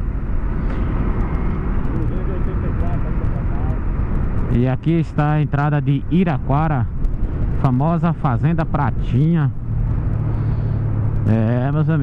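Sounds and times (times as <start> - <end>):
motorcycle engine: 0.0 - 12.0
road noise: 0.0 - 12.0
wind rushing on microphone: 0.0 - 12.0.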